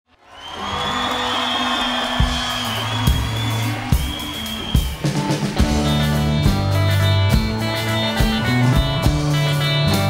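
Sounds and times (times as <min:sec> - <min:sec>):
live rock band music: 0:01.0 - 0:10.0.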